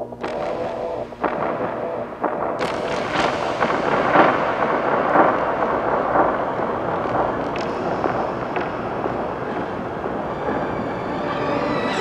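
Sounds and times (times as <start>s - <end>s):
crackling rumbling noise wash: 0.0s - 12.0s
scattered clicks: 2.6s - 10.7s.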